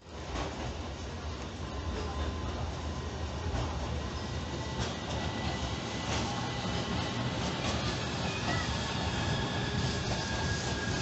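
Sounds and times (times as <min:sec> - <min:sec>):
tram rolling on tracks: 0:00.0 - 0:11.0.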